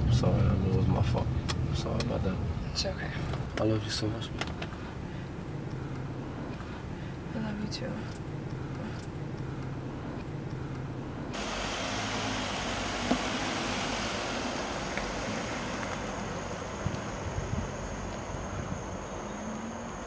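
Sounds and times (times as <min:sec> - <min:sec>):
car engine humming: 0:00.0 - 0:20.0
rushing noise of moving car: 0:08.2 - 0:20.0
faint high whine: 0:11.4 - 0:20.0.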